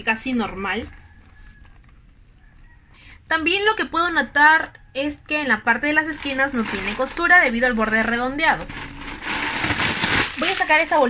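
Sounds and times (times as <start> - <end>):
low room rumble: 0.0 - 11.0.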